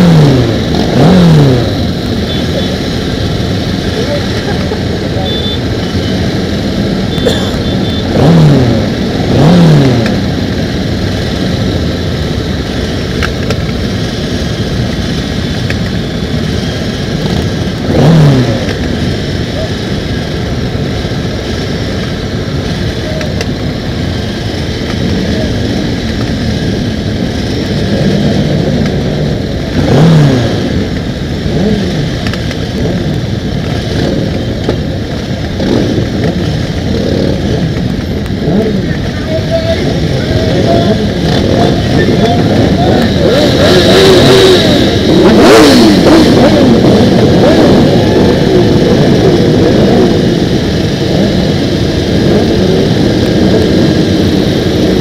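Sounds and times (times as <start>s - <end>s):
motorcycle throttle revving: 0.0s - 55.0s
motorcycles idling: 0.0s - 55.0s.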